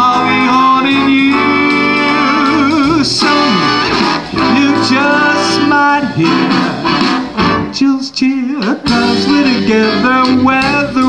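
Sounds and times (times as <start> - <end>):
jazz big band playing swing: 0.0 - 11.0
man singing: 0.0 - 11.0.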